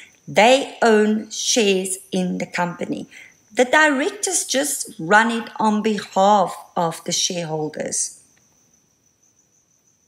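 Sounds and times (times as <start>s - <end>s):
faint high-pitched whine: 0.0s - 10.0s.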